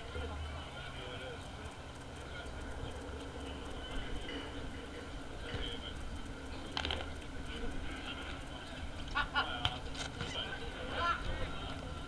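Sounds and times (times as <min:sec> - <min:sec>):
distant players' voices: 0:00.0 - 0:12.0.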